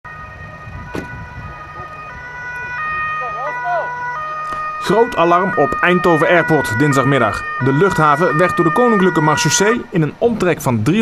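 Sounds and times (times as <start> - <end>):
ambulance two-tone siren: 0.0 - 9.9
low vehicle rumble: 0.1 - 10.5.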